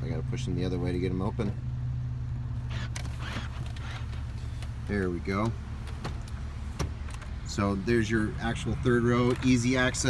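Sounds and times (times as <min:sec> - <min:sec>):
low hum inside car cabin: 0:00.0 - 0:10.0
faint whirring and clicks: 0:02.7 - 0:07.6, 0:08.8 - 0:10.0.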